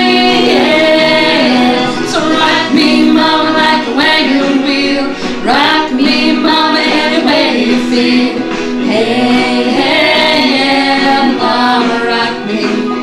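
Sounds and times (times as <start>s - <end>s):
women singing without words: 0.0s - 13.0s.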